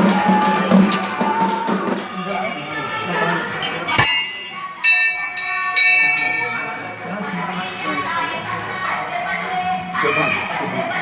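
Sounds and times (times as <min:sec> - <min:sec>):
metal temple bell ringing: 0:03.6 - 0:07.2.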